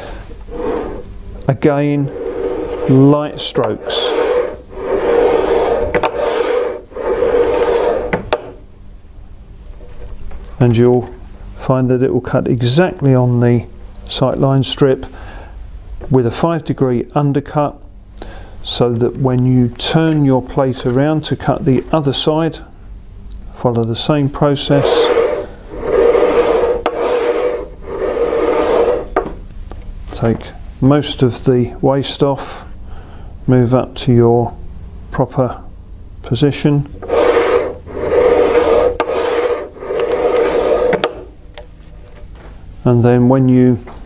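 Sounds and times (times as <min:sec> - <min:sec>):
cutter blade sliding along bar: 0:02.1 - 0:08.6, 0:24.7 - 0:29.3, 0:37.0 - 0:41.3.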